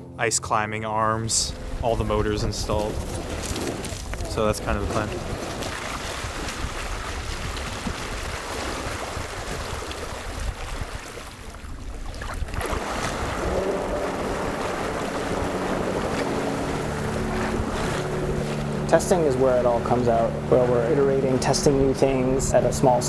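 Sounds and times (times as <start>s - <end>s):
steady low hum: 0.0s - 7.4s, 12.4s - 23.0s
wind noise: 1.5s - 18.8s
water splashing: 1.5s - 23.0s.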